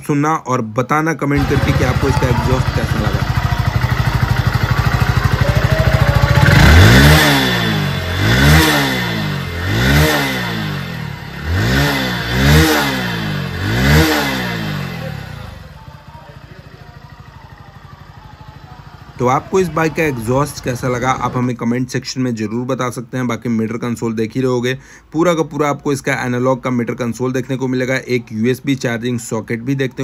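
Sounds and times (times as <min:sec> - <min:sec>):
motorcycle engine idling and revving: 0:01.4 - 0:21.7.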